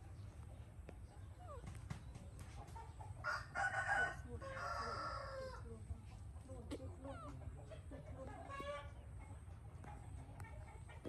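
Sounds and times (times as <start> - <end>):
rooster crowing: 3.2 - 5.6.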